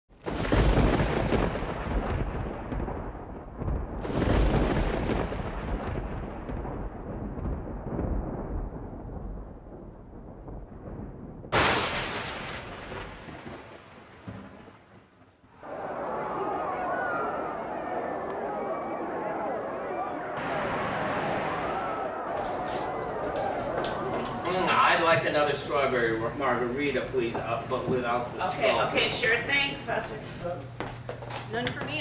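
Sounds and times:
sharp thunder crack: 0.1 - 15.1
low thunder rumbles: 0.1 - 18.2.

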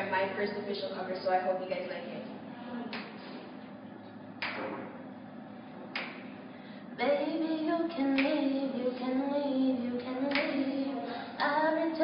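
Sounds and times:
hand claps echoing in hallway: 2.9 - 3.2, 4.4 - 5.0, 5.9 - 6.4, 8.1 - 8.4, 10.3 - 10.6.

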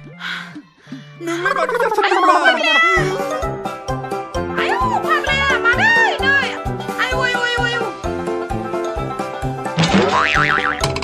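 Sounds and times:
low background music: 0.0 - 11.0.

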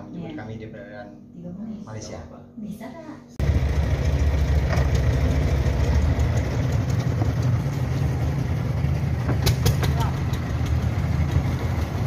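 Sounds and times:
boat engine idling: 3.4 - 12.0.

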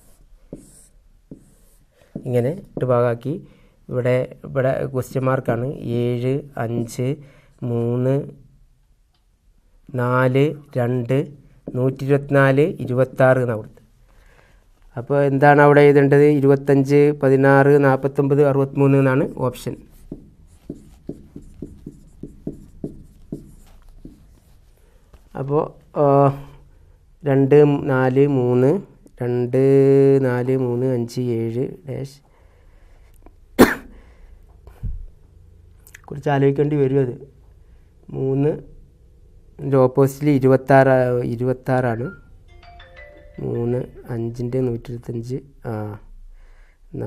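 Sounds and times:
marker drawing on whiteboard: 0.0 - 3.0, 18.8 - 25.4
light taps on whiteboard: 20.0 - 24.3.

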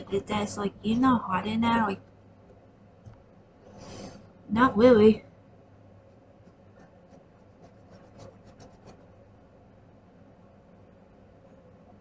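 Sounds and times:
coloring strokes scratching paper: 6.1 - 9.3.

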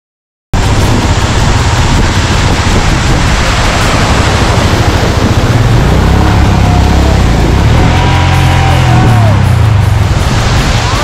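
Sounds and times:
motorcycle engine rumble: 0.6 - 11.0
running water: 0.6 - 11.0
water splashing: 0.6 - 11.0
wind on microphone: 0.6 - 11.0.

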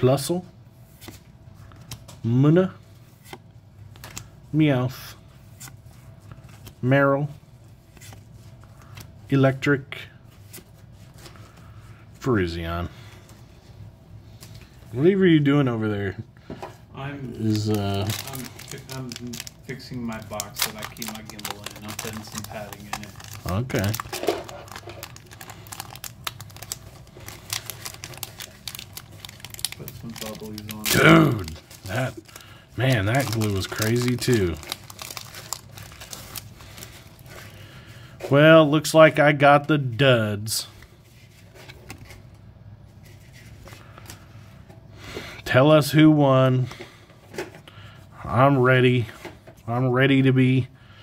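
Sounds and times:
low steady hum: 0.0 - 51.0
cards rustling: 2.9 - 4.4, 17.2 - 37.7.

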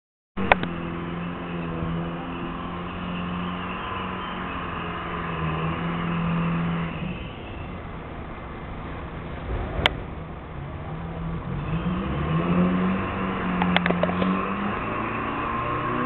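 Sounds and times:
sharp click: 0.4 - 0.7, 13.6 - 14.3.

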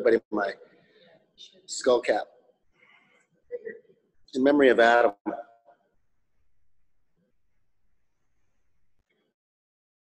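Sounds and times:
man speaking over video call: 0.0 - 2.6, 4.2 - 5.9.

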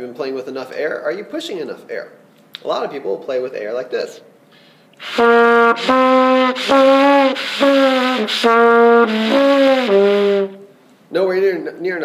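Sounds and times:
weak airy trumpet notes: 5.0 - 10.7.

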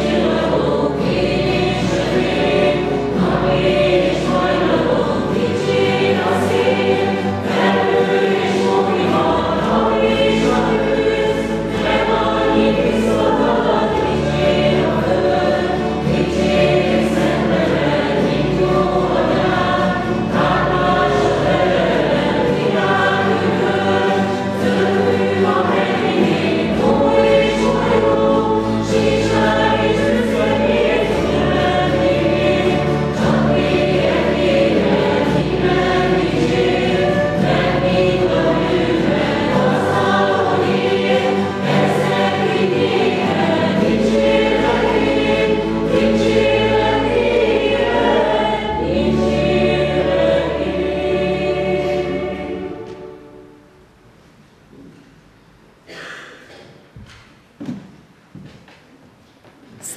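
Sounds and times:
group singing a hymn: 0.0 - 53.7
cello: 0.0 - 53.8
acoustic guitars: 0.0 - 55.2.

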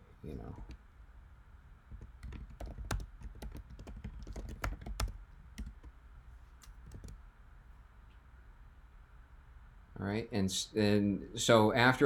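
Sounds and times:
computer keyboard typing: 1.9 - 5.9, 6.6 - 7.2.

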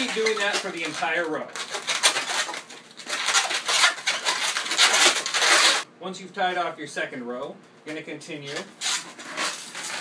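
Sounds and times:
balloons rubbing together: 0.0 - 5.9, 8.6 - 10.0.

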